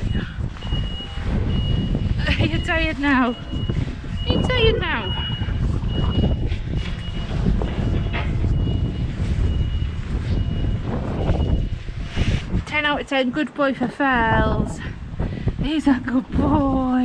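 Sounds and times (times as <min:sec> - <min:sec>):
reversing alarm beeping: 0:00.0 - 0:13.1
low rumble: 0:00.0 - 0:17.0.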